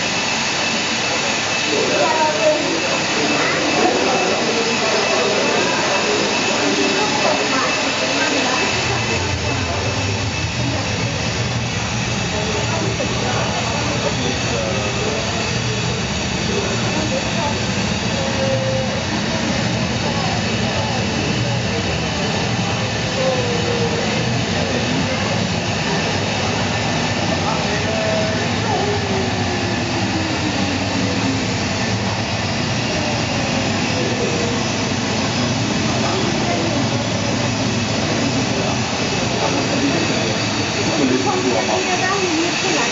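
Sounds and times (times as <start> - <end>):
jet engine over loudspeakers: 0.0 - 42.9
murmur of voices: 0.0 - 42.9.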